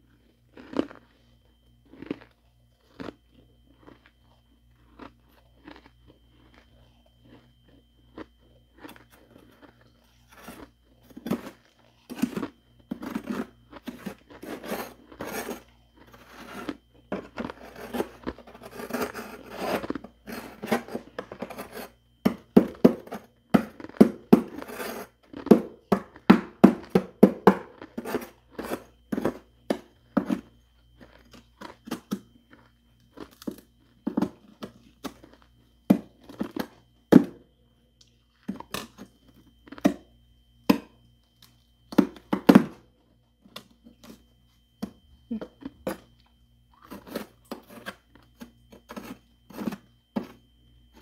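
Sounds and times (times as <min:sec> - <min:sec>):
metal spoon scraping frost: 0:08.9 - 0:22.0, 0:24.5 - 0:25.2, 0:27.8 - 0:29.4, 0:46.8 - 0:50.4.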